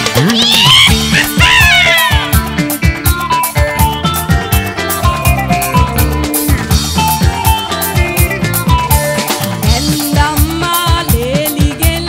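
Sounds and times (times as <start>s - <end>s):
bass guitar: 0.0s - 12.0s
drum kit: 0.0s - 12.0s
electric guitar: 0.0s - 12.0s.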